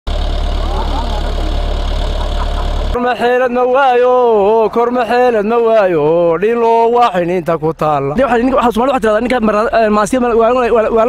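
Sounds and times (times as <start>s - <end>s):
tractor diesel engine rumbling: 0.1s - 11.0s.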